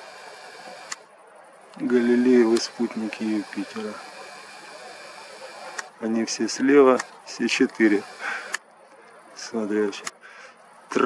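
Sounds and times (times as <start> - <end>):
camera click: 0.0 - 1.1, 1.7 - 6.0, 6.8 - 9.2
zoom motor whirring: 0.0 - 1.1, 1.8 - 8.6.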